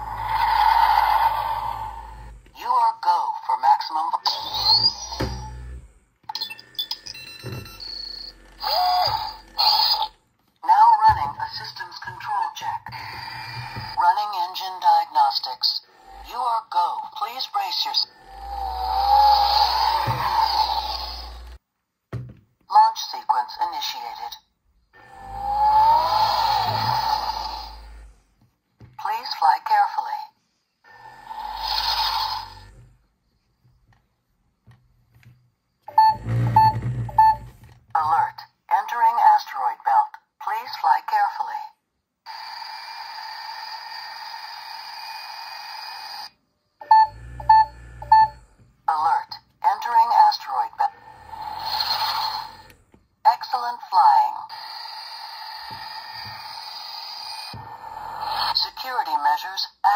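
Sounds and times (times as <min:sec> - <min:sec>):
short electronic beeps: 0:35.9 - 0:37.6, 0:46.8 - 0:48.4.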